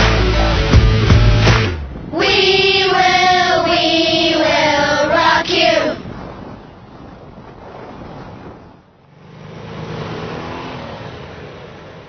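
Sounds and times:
motorcycle engines accelerating: 0:09.0 - 0:12.0.

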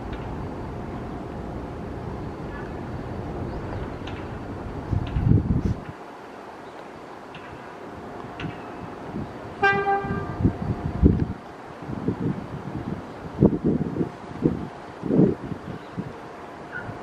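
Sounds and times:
steady background hum: 0:00.0 - 0:17.0
subway train horn toot: 0:09.6 - 0:10.7.

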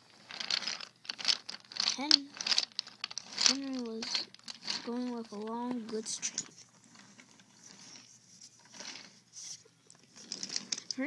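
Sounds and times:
toy train on wooden track: 0:00.0 - 0:11.0.

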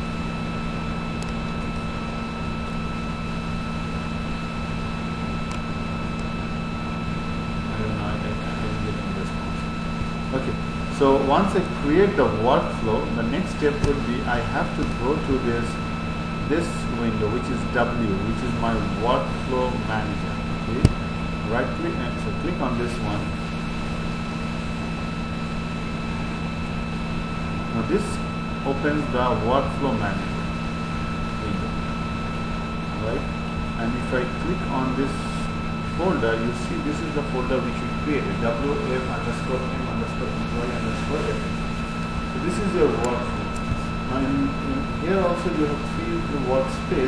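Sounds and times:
electrical hum and hiss: 0:00.0 - 0:47.0
faint high whine tones: 0:00.0 - 0:47.0.

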